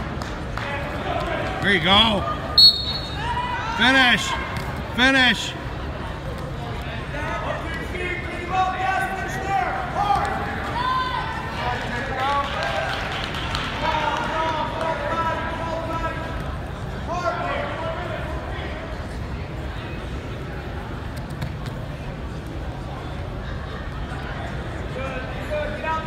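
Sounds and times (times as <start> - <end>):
coaches and spectators shouting: 0.6 - 5.9, 6.9 - 13.0, 13.7 - 19.0.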